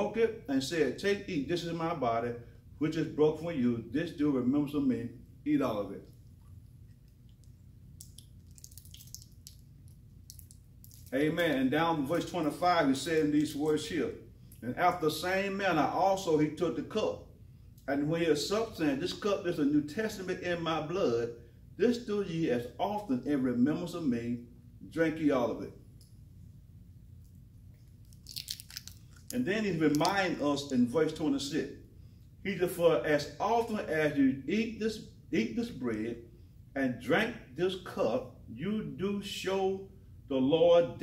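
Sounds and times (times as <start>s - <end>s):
low room hum: 0.0s - 41.0s
soft clicks and lip smacks: 6.1s - 11.1s, 27.2s - 30.2s
man chewing: 27.7s - 29.4s.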